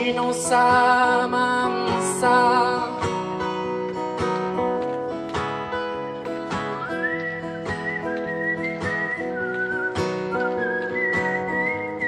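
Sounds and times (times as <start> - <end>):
acoustic guitar strummed chords: 0.0 - 12.0
man whistling melody: 6.6 - 12.0.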